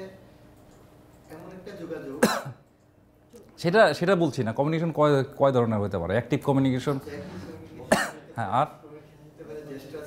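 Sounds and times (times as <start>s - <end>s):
sharp cough: 2.2s - 2.6s, 7.9s - 8.3s.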